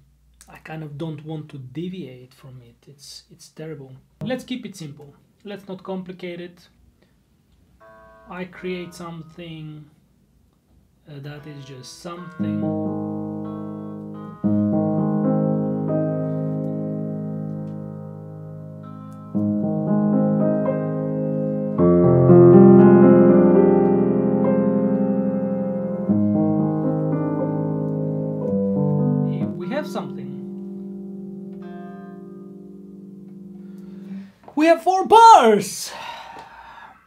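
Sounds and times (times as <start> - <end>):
grand piano chords: 7.8 - 9.5, 11.4 - 34.4.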